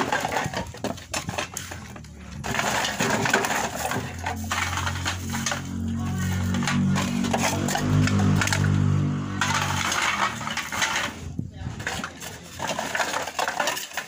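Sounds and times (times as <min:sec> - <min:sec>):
plastic bottles and cans clattering: 0:00.0 - 0:14.0
low hum with changing notes: 0:04.2 - 0:11.6.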